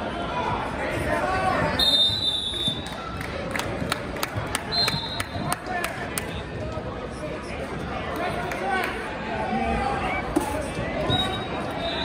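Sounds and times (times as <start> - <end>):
crowd chatter: 0.0 - 12.0
referee's whistle: 1.8 - 2.8, 4.7 - 5.4, 11.1 - 12.0.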